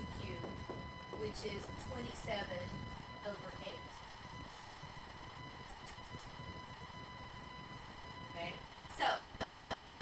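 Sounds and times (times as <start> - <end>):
high-pitched electrical whine: 0.0 - 10.0.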